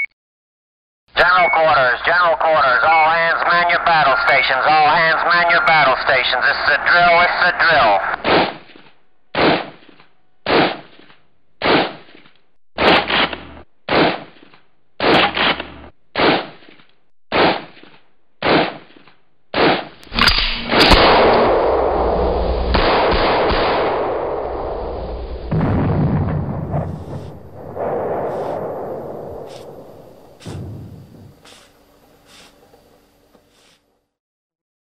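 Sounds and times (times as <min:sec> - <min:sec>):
gunshots: 0:05.7 - 0:08.7, 0:09.4 - 0:09.8, 0:10.5 - 0:11.0, 0:11.6 - 0:12.1, 0:12.8 - 0:14.4, 0:15.0 - 0:16.6, 0:17.3 - 0:17.8, 0:18.4 - 0:18.9, 0:19.5 - 0:24.7, 0:25.4 - 0:32.5
loud rumble: 0:20.6 - 0:33.0.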